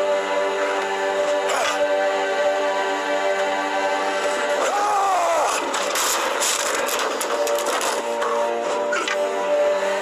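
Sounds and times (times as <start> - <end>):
sustained musical drone: 0.0 - 10.0.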